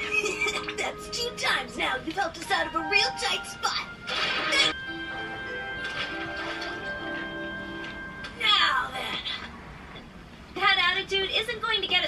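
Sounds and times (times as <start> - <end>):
held music notes: 0.0 - 9.0.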